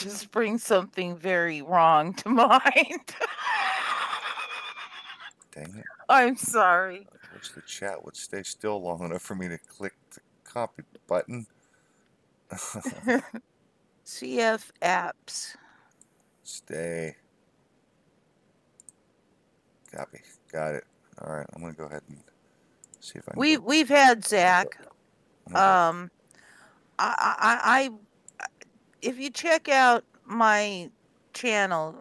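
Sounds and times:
person breathy laughter: 0:03.1 - 0:05.3, 0:12.6 - 0:13.4
computer mouse clicks: 0:18.8 - 0:19.0.

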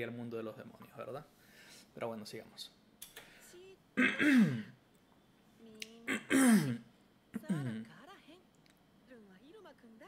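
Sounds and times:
man clearing his throat: 0:04.0 - 0:04.7, 0:06.1 - 0:06.8.

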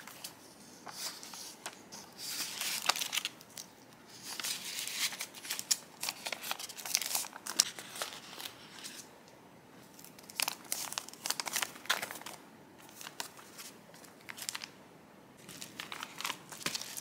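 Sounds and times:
paper packaging rustling: 0:00.0 - 0:09.1, 0:09.9 - 0:14.8, 0:15.4 - 0:17.0.

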